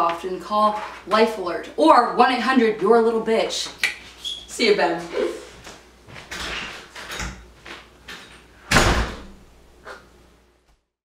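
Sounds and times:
door slamming: 8.7 - 9.4.

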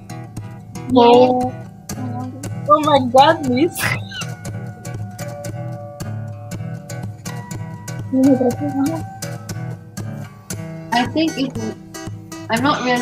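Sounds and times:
fingerstyle acoustic guitar: 0.0 - 13.0.

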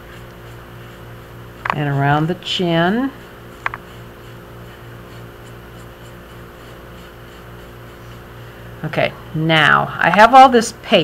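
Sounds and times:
brush scratching porcelain: 0.0 - 8.4
steady low hum: 0.0 - 11.0.

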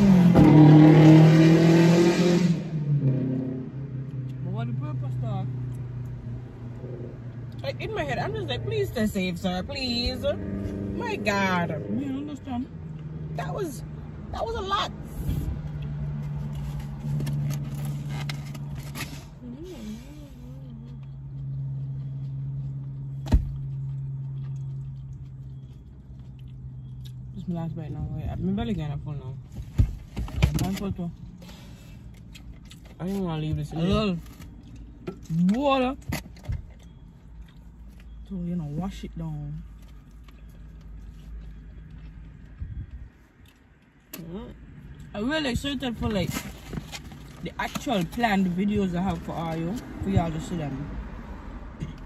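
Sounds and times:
low steady rumble: 2.6 - 52.0.

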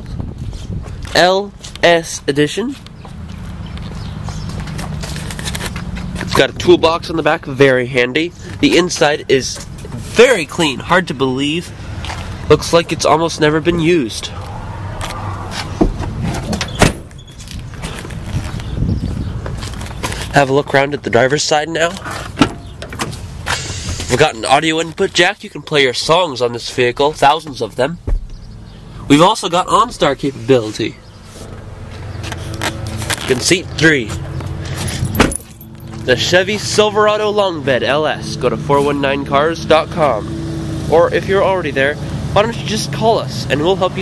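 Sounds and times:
car door shutting: 15.0 - 17.3, 28.0 - 28.5, 35.0 - 35.5
rustling and bumps: 15.0 - 20.4.

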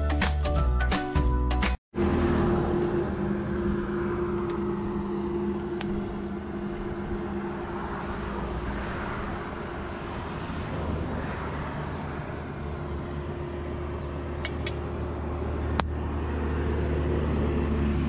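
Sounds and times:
vehicle engine hum and tyre rumble: 1.9 - 18.0.

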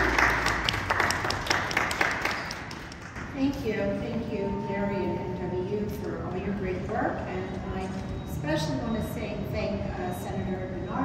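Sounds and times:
small group applauding: 0.0 - 3.4.

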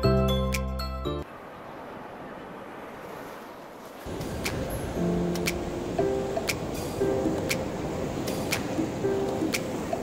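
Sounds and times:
backing music: 4.5 - 10.0.

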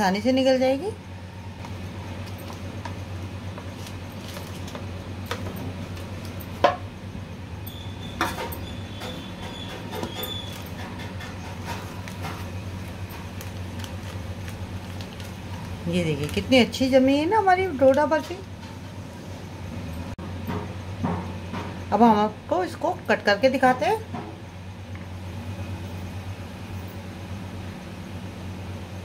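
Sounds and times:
paper crinkling: 3.5 - 5.0, 11.9 - 16.8.

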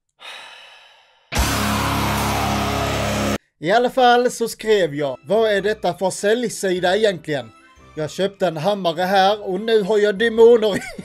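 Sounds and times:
distorted heavy metal scream: 1.4 - 3.4.

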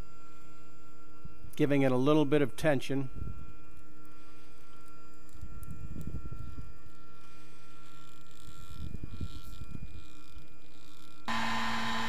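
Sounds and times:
stepper motors humming: 4.6 - 12.0.

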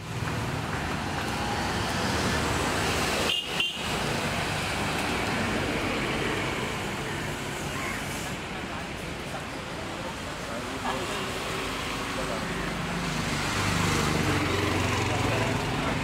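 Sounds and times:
roadside traffic rumble: 0.0 - 16.0.

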